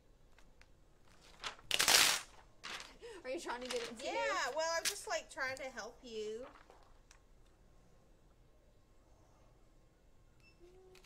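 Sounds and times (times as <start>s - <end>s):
plastic sheet crinkling: 0.3s - 7.2s.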